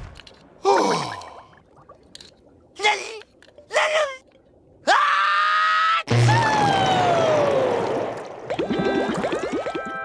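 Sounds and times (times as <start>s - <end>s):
cartoon character screaming: 4.9s - 7.7s.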